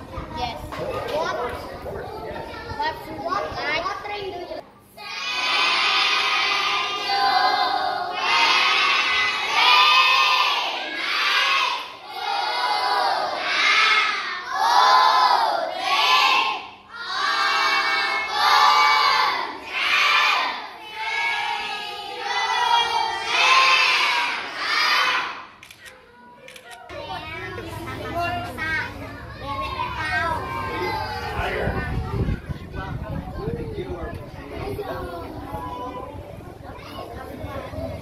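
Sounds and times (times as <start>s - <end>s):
children shouting in unison: 5.0s - 25.5s.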